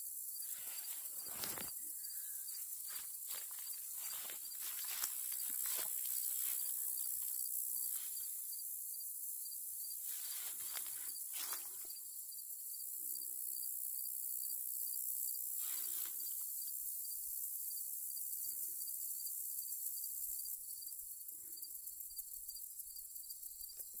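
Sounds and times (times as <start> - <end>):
insects chorus: 0.0 - 24.0
soft rustles: 0.5 - 1.8.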